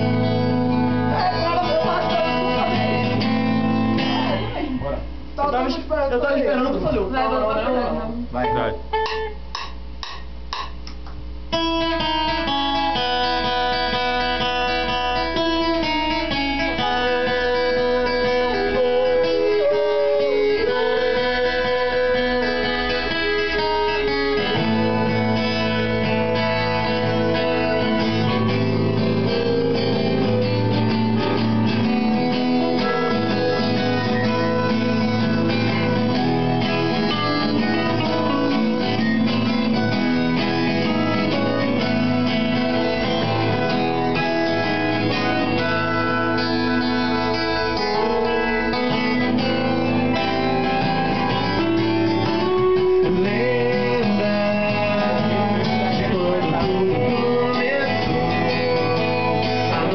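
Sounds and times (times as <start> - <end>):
strummed guitar music: 0.0 - 59.9.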